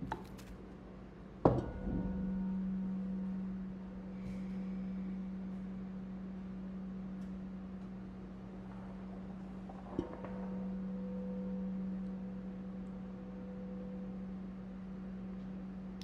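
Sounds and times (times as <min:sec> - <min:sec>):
singing bowl ringing: 0:01.6 - 0:06.9, 0:10.5 - 0:15.4.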